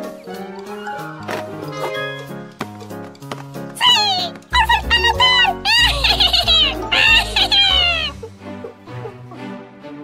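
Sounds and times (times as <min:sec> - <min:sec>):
cartoon background music: 0:00.0 - 0:10.0
squeaky creature chattering: 0:03.8 - 0:08.2.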